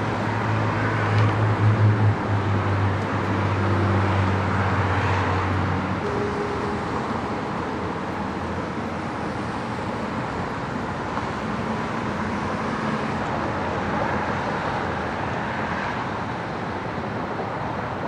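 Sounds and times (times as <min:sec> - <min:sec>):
freeway traffic noise: 0:00.0 - 0:18.0.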